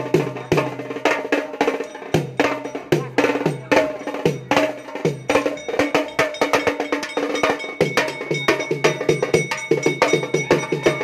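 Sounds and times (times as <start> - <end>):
tom drums played fast: 0.0 - 11.0
high ringing tone: 4.0 - 11.0.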